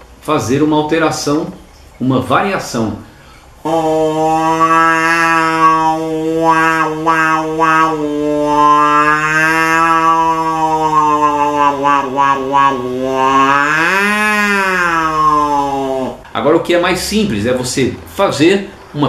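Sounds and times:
buzzing drone through a straw: 3.7s - 15.0s.

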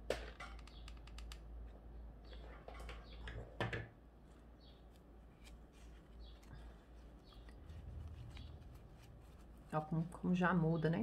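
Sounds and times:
rustling of hair bow: 4.2s - 10.5s.

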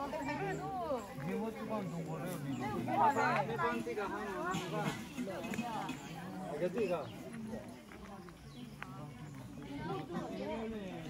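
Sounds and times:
people talking in background: 0.0s - 11.0s.

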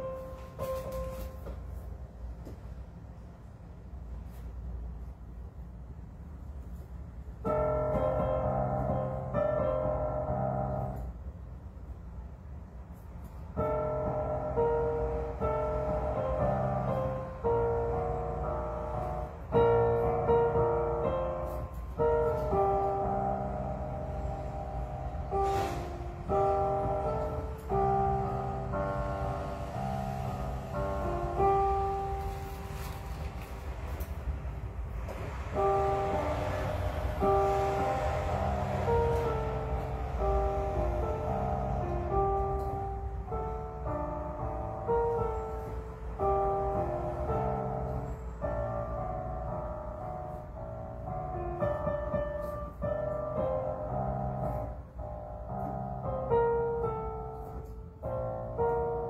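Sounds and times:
digital piano chords: 0.0s - 59.0s.

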